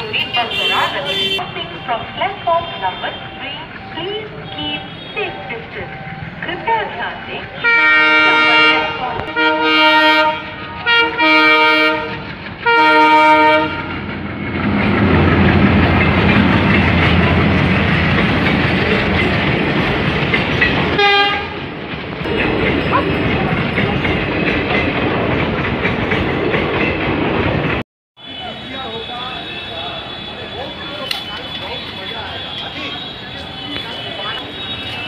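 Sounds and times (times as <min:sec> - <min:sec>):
train rumbling on track: 0:00.0 - 0:35.0
train horn blasts: 0:00.1 - 0:03.6, 0:04.4 - 0:05.4, 0:07.5 - 0:14.1, 0:21.0 - 0:21.7.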